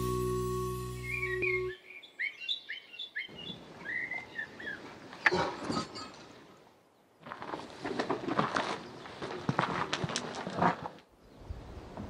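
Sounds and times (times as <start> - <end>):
intro music chord: 0.0 - 1.7
birds chirping: 0.9 - 5.2.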